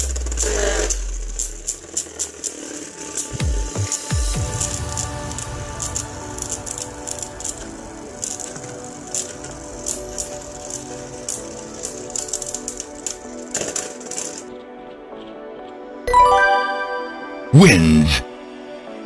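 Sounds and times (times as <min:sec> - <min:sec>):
spinning tops whirring and clashing: 0:00.0 - 0:14.5.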